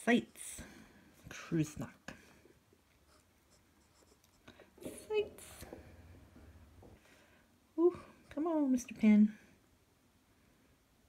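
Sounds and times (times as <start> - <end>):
glass pen scratching on paper: 3.1 - 5.6.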